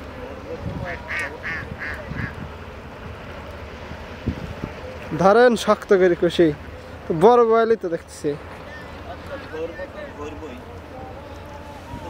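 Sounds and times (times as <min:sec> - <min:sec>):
duck quacking: 0:01.0 - 0:02.3.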